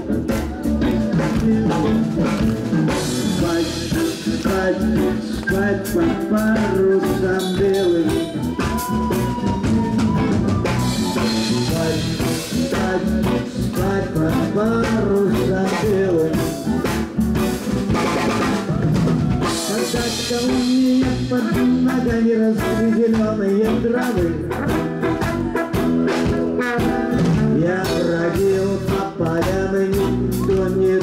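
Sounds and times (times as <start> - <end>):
saxophone: 0.0 - 14.5, 15.5 - 22.0, 22.6 - 28.7
brass horn melody: 0.0 - 29.1
drum kit beat: 0.0 - 31.0
guitars: 0.0 - 31.0.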